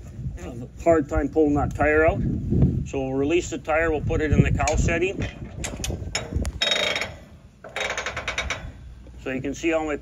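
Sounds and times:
cattle chute mechanism clicking: 4.6s - 9.2s.

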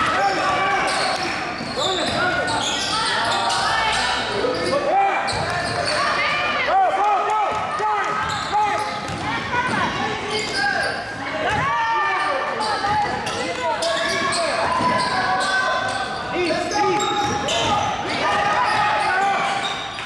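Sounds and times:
sneakers squeaking: 0.2s - 6.4s, 7.5s - 20.0s.

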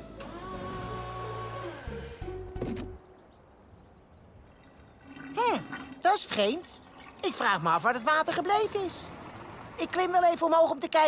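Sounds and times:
forklift lift motor whirring: 0.0s - 2.5s.

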